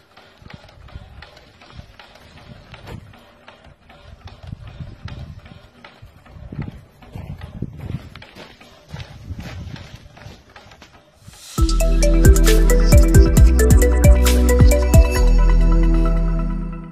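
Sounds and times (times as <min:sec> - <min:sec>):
fast mechanical clicking: 0:00.0 - 0:11.4
steam engine puffing: 0:11.0 - 0:15.0.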